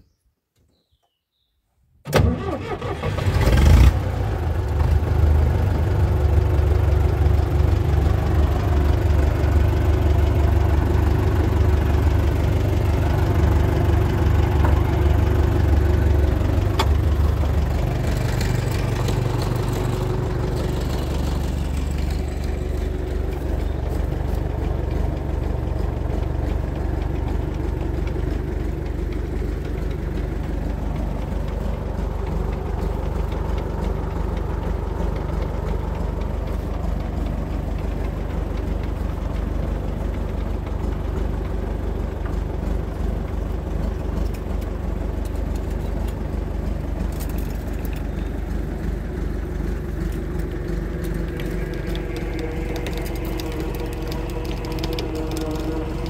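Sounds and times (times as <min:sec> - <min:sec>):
tractor engine starting and idling: 0:02.0 - 0:56.0.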